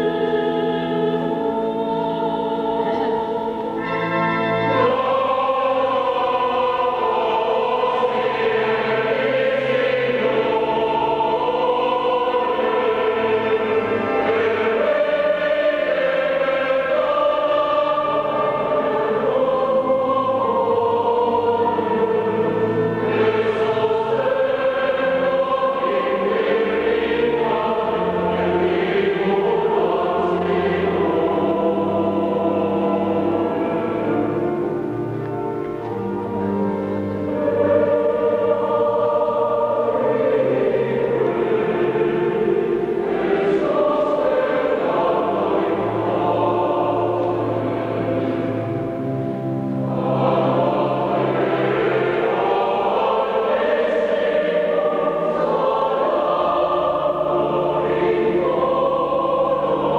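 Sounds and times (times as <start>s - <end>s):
mixed choir singing: 0.0s - 59.9s.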